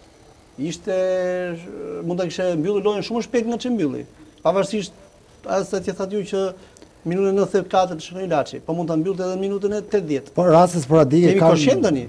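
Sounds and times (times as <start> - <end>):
man speaking: 0.6 - 12.0.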